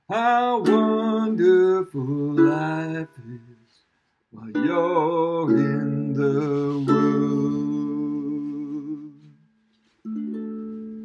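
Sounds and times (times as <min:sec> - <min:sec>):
man singing with vibrato: 0:00.0 - 0:03.8, 0:04.4 - 0:09.4
ukulele chord ringing: 0:00.2 - 0:03.5, 0:04.5 - 0:09.1, 0:10.1 - 0:11.0.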